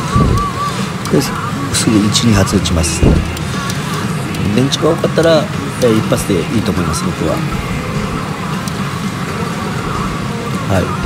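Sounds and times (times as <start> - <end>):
electronic machine sounds: 0.0 - 11.0
pachinko machines and steel balls: 0.0 - 11.0.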